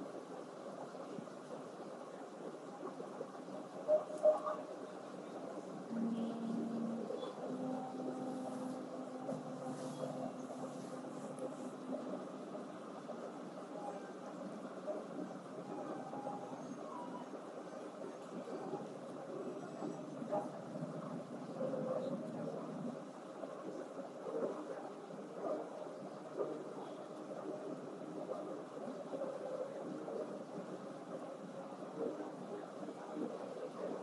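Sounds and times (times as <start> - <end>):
faint hum: 0.0 - 34.0
steady background noise: 0.0 - 34.0.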